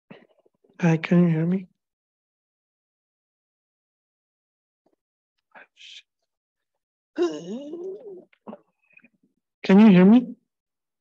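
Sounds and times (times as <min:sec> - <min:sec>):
person's drawn-out vocal sound: 0:07.2 - 0:08.3.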